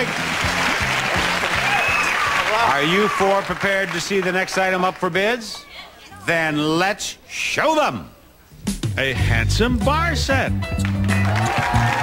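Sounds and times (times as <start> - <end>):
audience applauding: 0.0 - 5.2, 10.7 - 12.0
game-show music with steady beat: 8.5 - 12.0.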